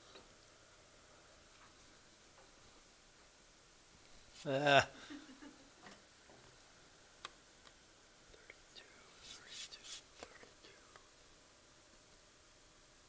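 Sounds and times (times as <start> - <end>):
soft whispering: 8.3 - 11.2.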